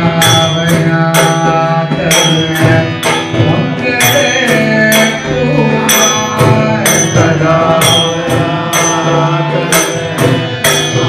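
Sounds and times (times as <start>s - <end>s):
bright metallic percussion strokes: 0.0s - 11.0s
man singing devotional song: 0.0s - 11.0s
steady musical accompaniment: 0.0s - 11.0s.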